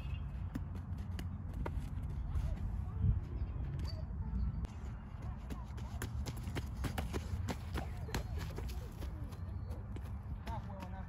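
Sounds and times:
wind rumble on microphone: 0:01.6 - 0:05.0.

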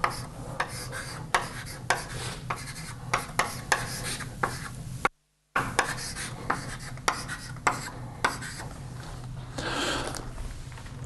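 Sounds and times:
writing on a board: 0:00.0 - 0:04.7, 0:05.6 - 0:08.7.

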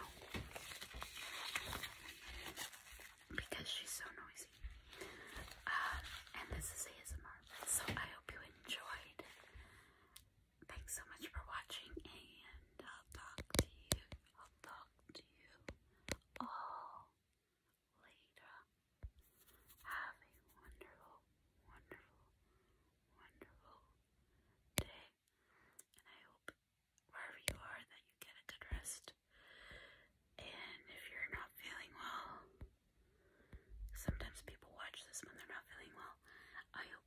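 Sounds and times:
person whispering: 0:00.0 - 0:09.4, 0:10.6 - 0:15.8, 0:16.4 - 0:17.2, 0:17.9 - 0:18.7, 0:19.7 - 0:22.3, 0:23.1 - 0:24.0, 0:24.8 - 0:25.2, 0:26.0 - 0:29.2, 0:30.4 - 0:32.6, 0:33.9 - 0:37.0.

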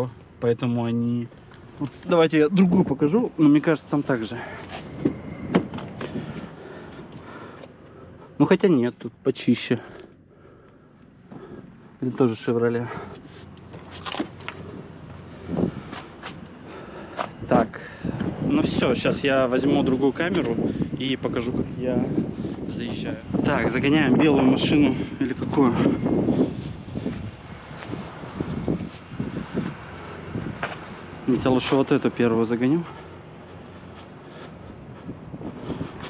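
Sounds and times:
wind buffeting microphone: 0:01.6 - 0:08.3, 0:14.3 - 0:36.0
footsteps on asphalt: 0:04.5 - 0:08.0, 0:12.9 - 0:17.5, 0:25.5 - 0:36.0
dull thump: 0:05.0 - 0:06.0.

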